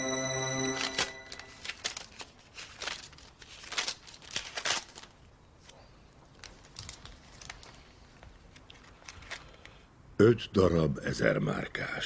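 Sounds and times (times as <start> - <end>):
paper banknotes rustling: 0.9 - 5.8.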